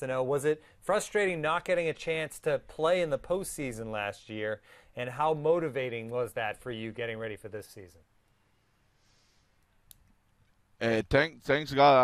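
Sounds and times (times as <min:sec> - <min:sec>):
man's voice: 0:10.8 - 0:12.0.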